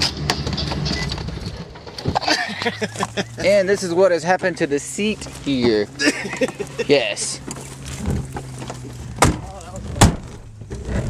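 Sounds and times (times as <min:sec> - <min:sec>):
low engine hum: 0:00.0 - 0:11.0
sharp knocks: 0:09.2 - 0:10.4.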